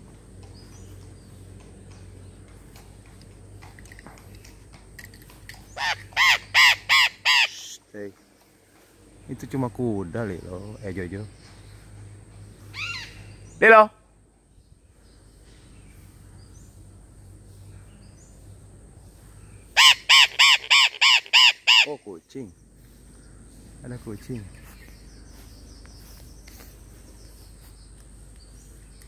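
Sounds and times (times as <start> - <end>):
parrot calling: 5.7 - 7.8, 12.7 - 13.3, 19.7 - 22.0.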